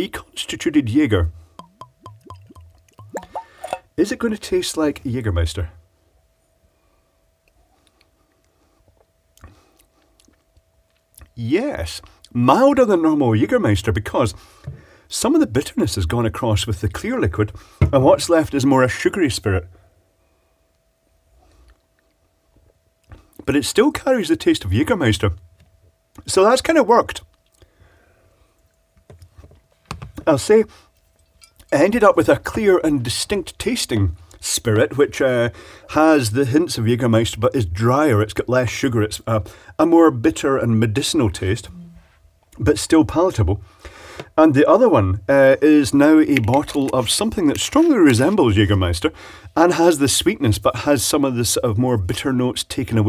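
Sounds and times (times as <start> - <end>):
faint steady hum: 0.0 - 53.0
person sipping a drink: 1.6 - 3.8
liquid glugging from bottle: 1.6 - 3.9.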